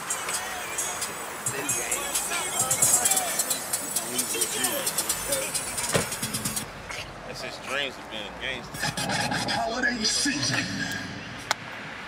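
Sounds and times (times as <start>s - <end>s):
indistinct talking: 0.2s - 11.5s.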